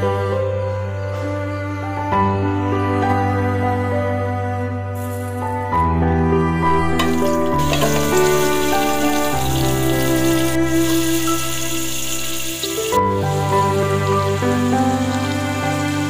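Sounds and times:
music with slow held chords: 0:00.0 - 0:16.0
hot oil sizzling: 0:07.0 - 0:16.0.

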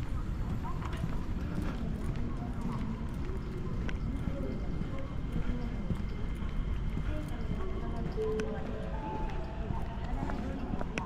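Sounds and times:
faint voices: 0:00.0 - 0:11.0
footsteps on pavement: 0:00.0 - 0:11.0
steady urban hum: 0:00.0 - 0:11.0.

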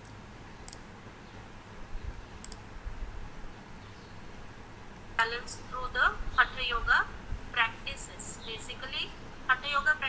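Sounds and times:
computer mouse clicking: 0:00.0 - 0:00.9, 0:02.4 - 0:02.7
low steady background hum: 0:00.0 - 0:10.0.

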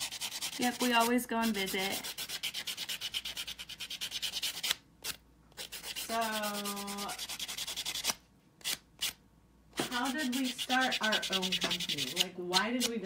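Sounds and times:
nail buffer rasping: 0:00.0 - 0:04.8.

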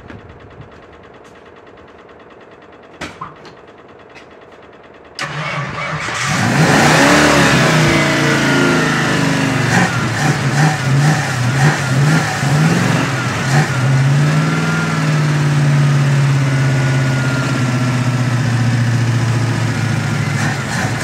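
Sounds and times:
car engine starting and revving: 0:05.2 - 0:21.0.

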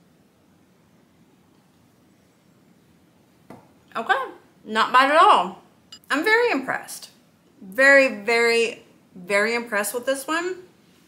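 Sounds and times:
woman speaking: 0:03.9 - 0:10.7.

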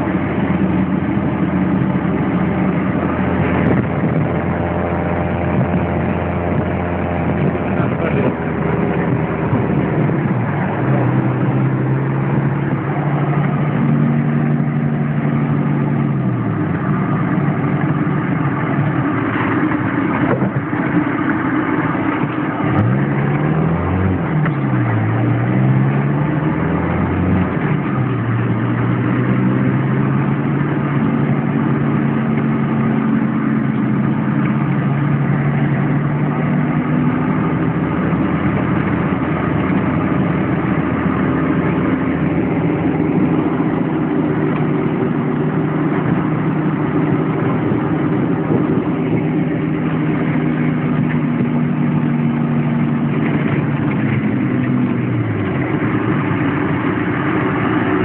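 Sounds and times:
off-roader engine running: 0:00.0 - 0:58.0.

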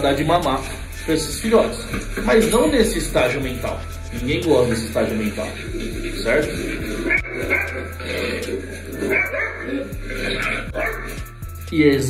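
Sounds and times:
background music: 0:00.0 - 0:12.0
puppies yipping and barking: 0:05.7 - 0:11.4.

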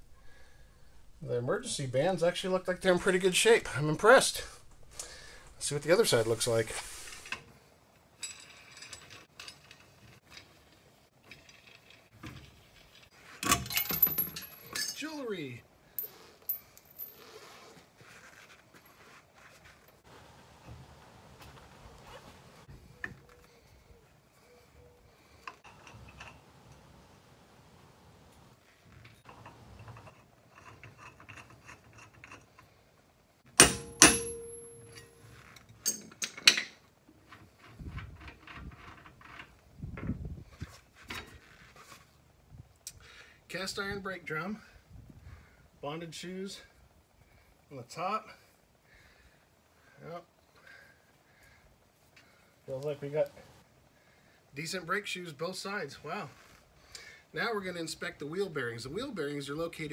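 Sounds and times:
wrench clinking on metal: 0:13.5 - 0:15.1, 0:33.6 - 0:36.8
ringing metal strikes: 0:33.6 - 0:35.2.

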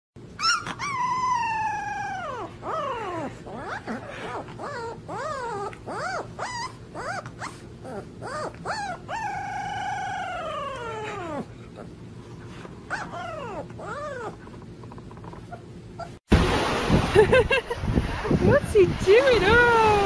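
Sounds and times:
puppy yelping and whining: 0:00.3 - 0:12.0, 0:12.8 - 0:16.2
puppy howling: 0:00.4 - 0:11.9, 0:12.9 - 0:14.6.

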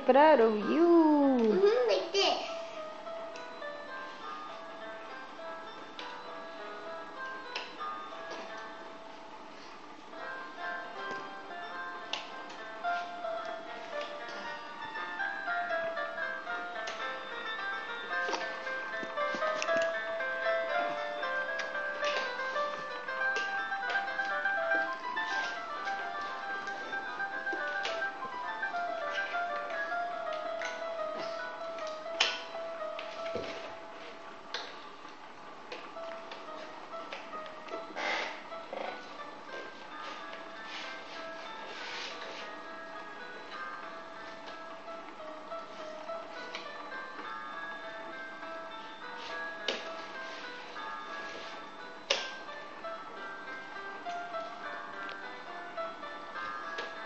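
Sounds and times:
electronic lullaby melody: 0:02.6 - 0:57.0.

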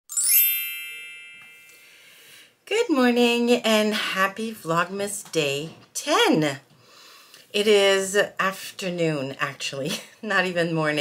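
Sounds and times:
bell-like ding: 0:00.1 - 0:02.2
rising sparkle: 0:00.1 - 0:02.4.

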